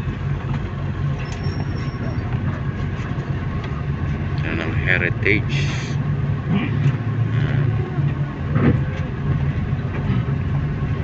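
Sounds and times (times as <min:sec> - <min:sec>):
engine drone inside vehicle: 0:00.0 - 0:11.0
road noise: 0:00.0 - 0:11.0.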